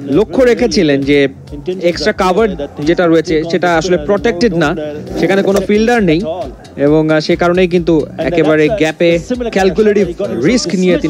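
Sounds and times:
commentator talking: 0:00.0 - 0:11.0.

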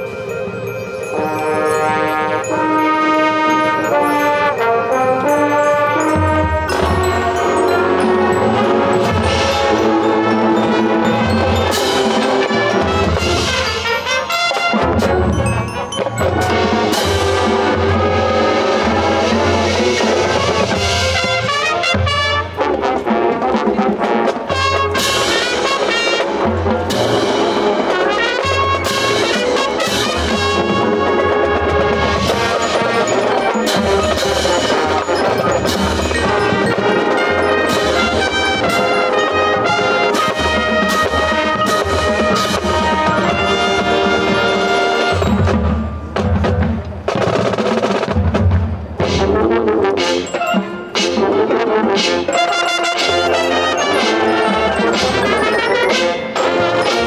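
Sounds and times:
marching band playing: 0:00.0 - 0:57.0.

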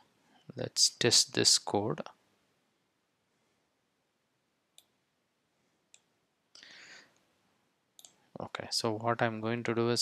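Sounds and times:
keyboard or mouse clicks: 0:08.0 - 0:08.2.

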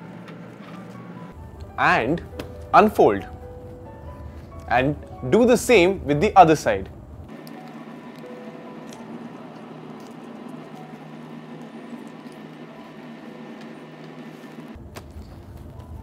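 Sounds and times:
steady background hum: 0:00.0 - 0:16.0
paper being folded and creased: 0:14.0 - 0:16.0.

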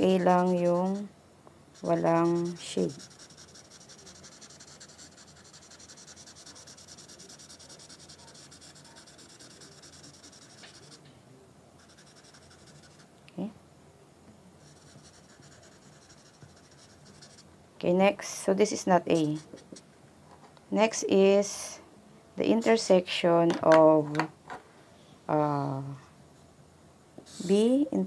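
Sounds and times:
marker scribbling on paper: 0:00.0 - 0:01.1, 0:01.8 - 0:11.0, 0:11.8 - 0:13.1, 0:14.6 - 0:17.4, 0:19.1 - 0:19.8.

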